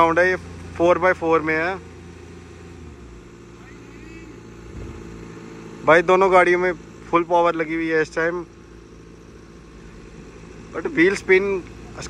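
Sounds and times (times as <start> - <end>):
car engines running under load: 0.0 - 12.0.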